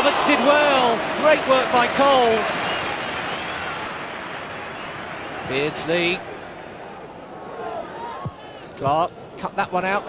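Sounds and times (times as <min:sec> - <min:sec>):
stadium crowd voices: 0:00.0 - 0:10.0.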